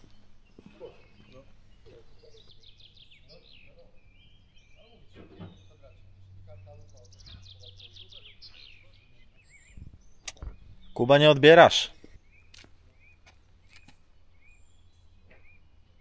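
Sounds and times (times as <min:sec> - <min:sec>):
small birds singing: 0:00.0 - 0:16.0
sharp click: 0:10.2 - 0:10.5.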